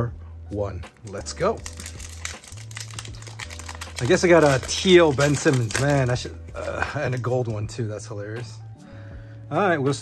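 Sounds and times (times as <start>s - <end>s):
foil wrapper tearing and crinkling: 1.1s - 7.4s.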